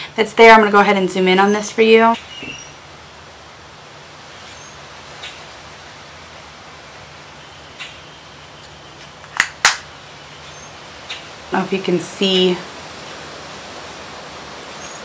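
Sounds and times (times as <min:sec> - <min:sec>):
background hiss: 0:00.0 - 0:15.0.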